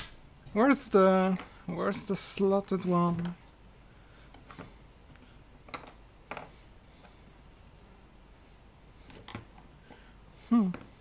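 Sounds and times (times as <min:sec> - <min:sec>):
person humming: 0:10.4 - 0:11.0.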